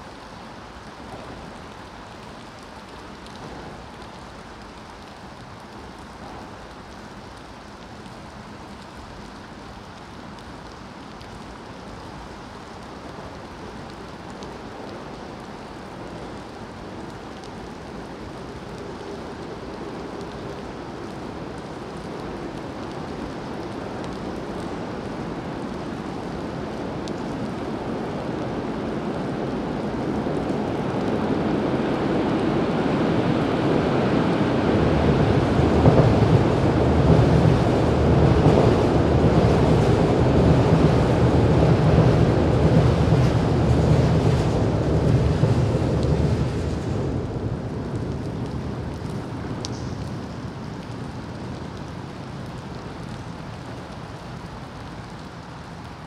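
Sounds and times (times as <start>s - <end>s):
steady rain falling: 0.0s - 56.0s
deep rumble: 34.8s - 50.1s.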